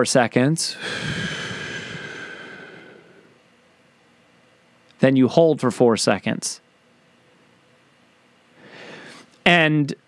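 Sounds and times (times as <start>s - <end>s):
man breathing out: 0.8s - 3.4s, 8.6s - 9.3s.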